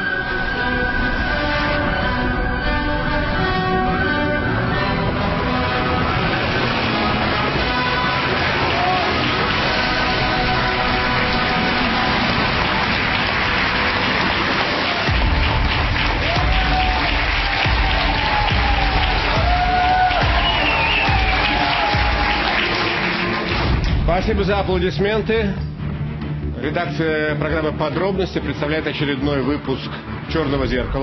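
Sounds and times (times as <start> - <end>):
theme music: 0.0 - 31.0
audience applauding: 3.6 - 24.4.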